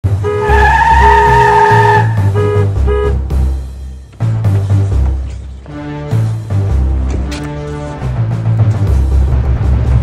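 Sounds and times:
background music with bass line: 0:00.0 - 0:10.0
car tyres screeching: 0:00.2 - 0:02.6.

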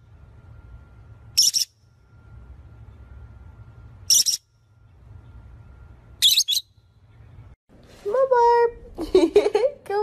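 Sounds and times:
parrot shrill calls: 0:01.4 - 0:01.7, 0:04.1 - 0:04.4, 0:06.2 - 0:06.7.

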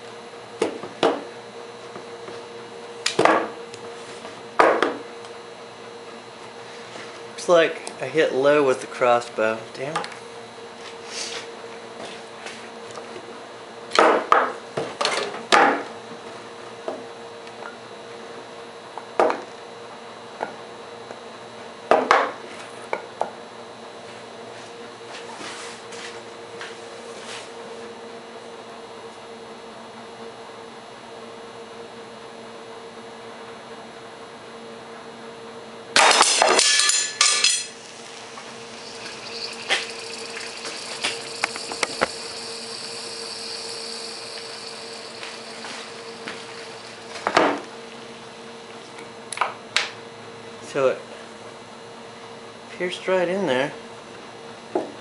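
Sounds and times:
battery cell clinking when handled: 0:37.2 - 0:47.3
battery venting hiss with crackles: 0:37.2 - 0:48.0.

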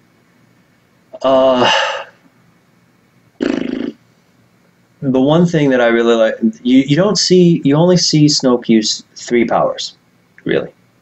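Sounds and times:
short vocal sound: 0:01.2 - 0:02.2, 0:03.4 - 0:04.0.

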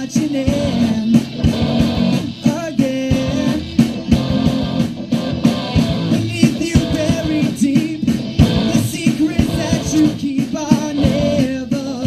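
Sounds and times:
young man singing: 0:00.0 - 0:01.5, 0:02.2 - 0:04.1, 0:06.1 - 0:12.0
bass guitar: 0:00.0 - 0:12.0
drums: 0:00.0 - 0:12.0
electric guitar: 0:00.0 - 0:12.0.

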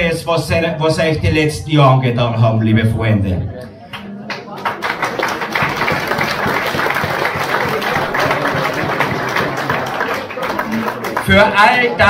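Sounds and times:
audience applauding: 0:03.9 - 0:12.0.

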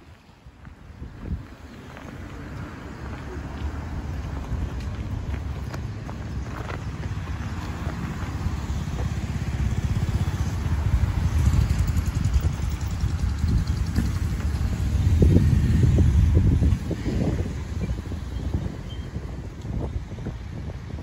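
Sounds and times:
cars passing close by: 0:00.0 - 0:21.0
wind rumbling on microphone: 0:00.0 - 0:21.0.

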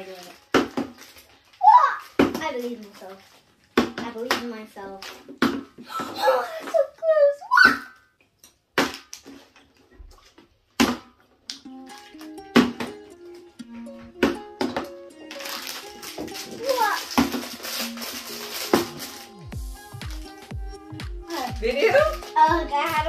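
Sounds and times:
background music: 0:10.8 - 0:23.0.

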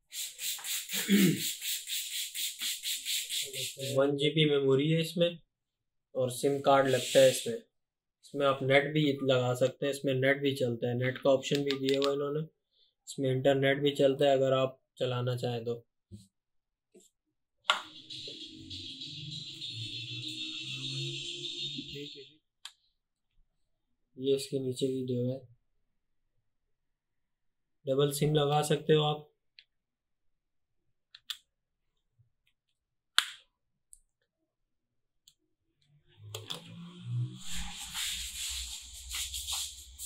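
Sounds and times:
electronic background music: 0:17.7 - 0:22.3, 0:36.2 - 0:40.0.

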